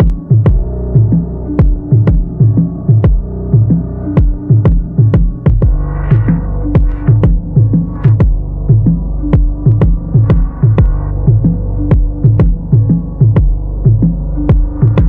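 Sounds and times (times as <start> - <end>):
kick drum: 0.0 - 15.0
sliding deep bass notes: 0.0 - 15.0.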